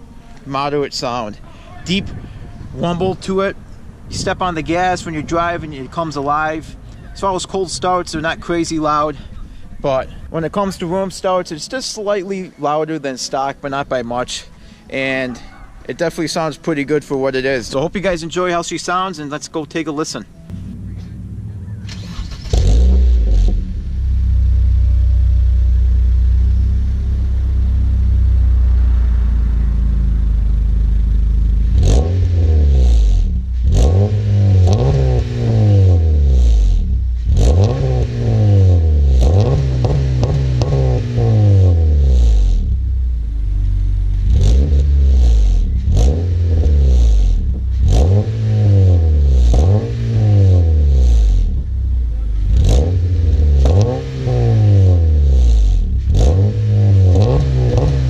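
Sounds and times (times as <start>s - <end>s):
car engine idling and revving: 20.4s - 58.0s.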